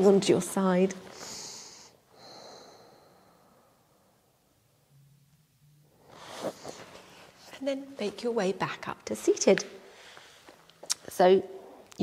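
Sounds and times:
woman breathing: 0:01.0 - 0:04.5, 0:09.8 - 0:10.7.

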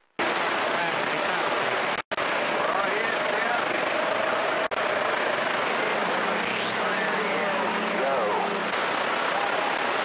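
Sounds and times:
radio static hiss: 0:00.0 - 0:10.0
faint garbled voices: 0:00.6 - 0:10.0.

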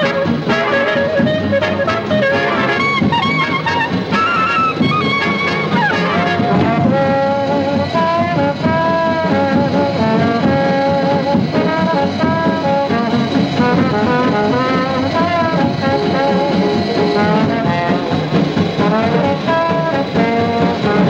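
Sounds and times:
swing band music: 0:00.0 - 0:21.0.

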